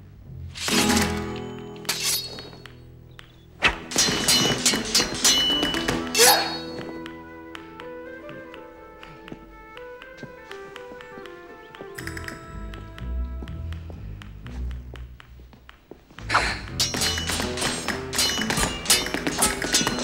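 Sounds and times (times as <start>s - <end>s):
orchestral film music: 0.0s - 15.4s
steel swords clashing: 0.5s - 2.9s, 3.6s - 7.0s, 16.3s - 20.0s.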